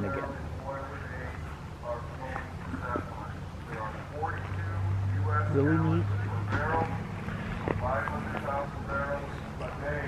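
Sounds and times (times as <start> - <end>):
people talking: 0.0 - 7.0, 7.7 - 10.0
steady low hum: 0.0 - 10.0.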